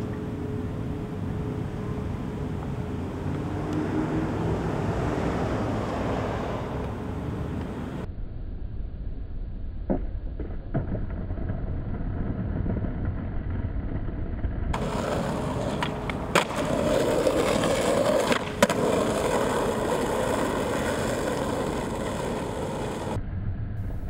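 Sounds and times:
skateboard wheels rolling on asphalt: 0:00.0 - 0:08.1, 0:09.8 - 0:23.2
skateboard clacks: 0:14.7 - 0:23.2.

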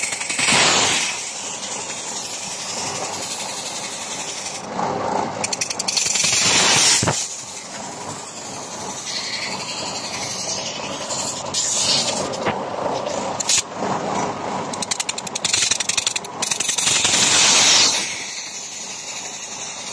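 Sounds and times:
compressed air hissing: 0:00.0 - 0:04.7, 0:05.4 - 0:12.5, 0:15.4 - 0:19.9
rapid clicking: 0:00.0 - 0:04.7, 0:05.3 - 0:13.7, 0:14.7 - 0:19.9
steady mechanical noise: 0:00.0 - 0:19.9.

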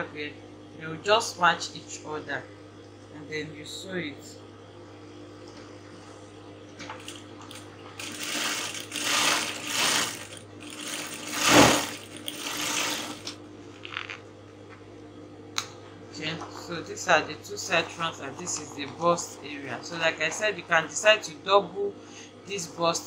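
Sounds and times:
electric sewing machine stitching: 0:07.0 - 0:13.4.

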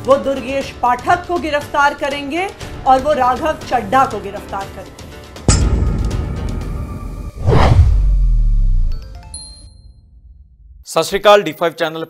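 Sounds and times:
whoosh: 0:07.2 - 0:09.0.

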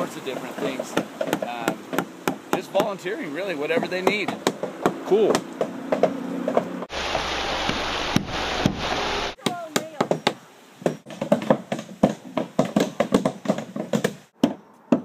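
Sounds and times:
hammers driving nails into wood: 0:00.9 - 0:03.0, 0:03.7 - 0:06.7, 0:10.0 - 0:15.0.

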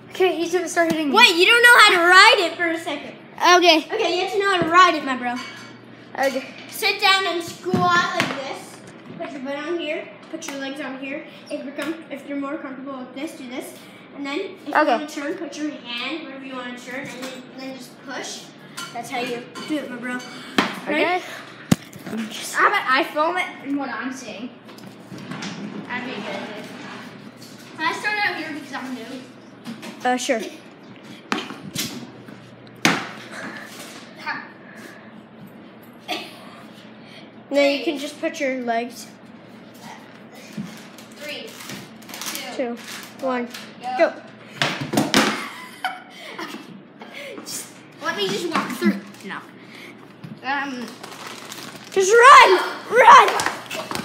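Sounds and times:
children talking: 0:00.0 - 0:24.6, 0:27.6 - 0:29.4, 0:45.2 - 0:51.0, 0:51.9 - 0:54.0.

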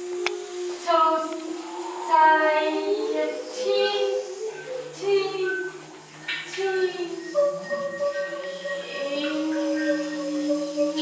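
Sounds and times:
choir singing held notes: 0:00.0 - 0:11.0
whispered hiss: 0:00.0 - 0:11.0.

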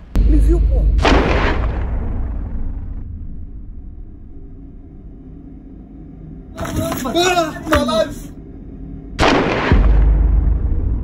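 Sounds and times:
deep rumble: 0:00.0 - 0:11.0
loud gunshot with echo: 0:01.0 - 0:02.2.

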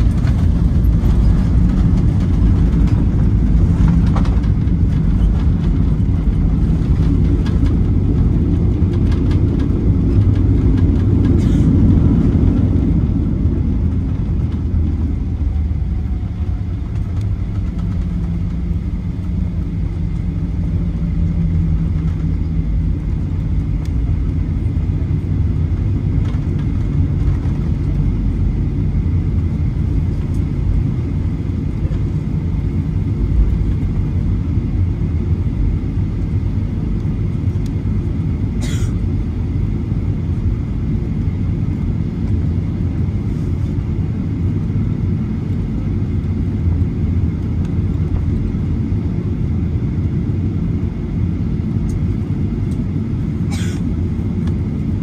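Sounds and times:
jet engines rumbling: 0:00.0 - 0:55.0.

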